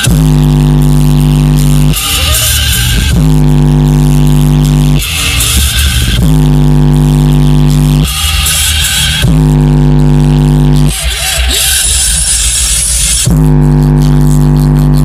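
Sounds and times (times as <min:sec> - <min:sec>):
bass-heavy electronic music: 0:00.0 - 0:15.0.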